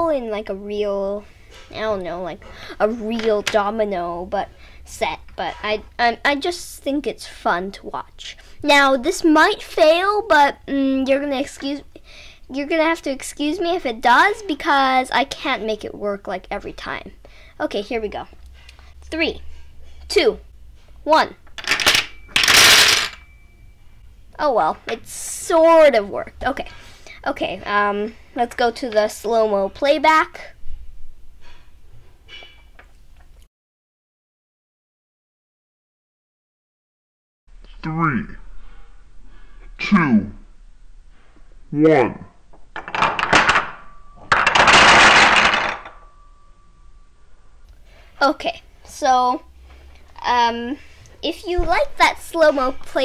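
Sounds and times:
wooden dominoes clattering: 21.6s - 23.2s, 42.8s - 46.0s.

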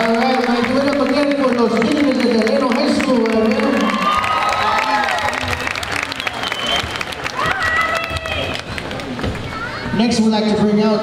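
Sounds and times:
audience applauding: 0.0s - 9.6s
high whoops: 3.8s - 5.5s, 6.1s - 8.6s.

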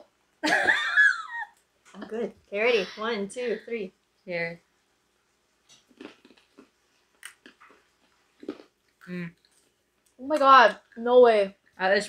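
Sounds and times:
people chewing almonds: 5.6s - 10.2s.

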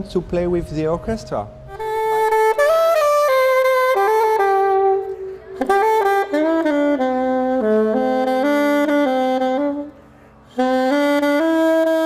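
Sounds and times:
alto saxophone melody: 1.6s - 12.0s.

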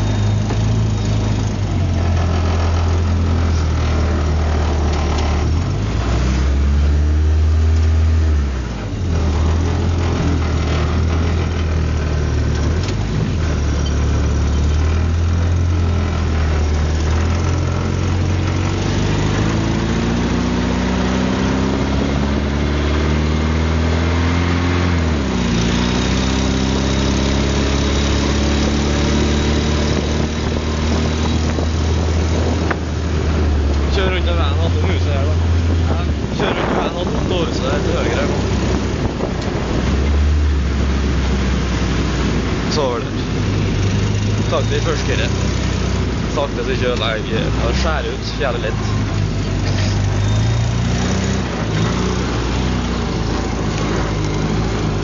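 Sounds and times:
car engine revving: 0.0s - 55.0s
heavy low rumble: 29.9s - 55.0s.

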